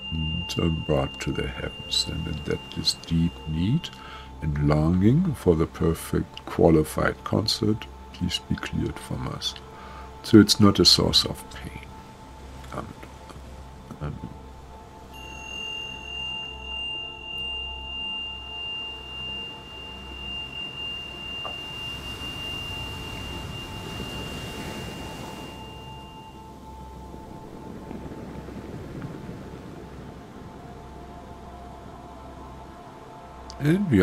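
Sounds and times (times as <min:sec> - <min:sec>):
soft rushing swell: 0:00.0 - 0:05.6, 0:07.0 - 0:34.0
pulsing low hum: 0:00.0 - 0:05.8, 0:16.3 - 0:33.6
high pure ringing tone: 0:00.0 - 0:13.7, 0:14.4 - 0:34.0
sustained drone tones: 0:00.0 - 0:34.0.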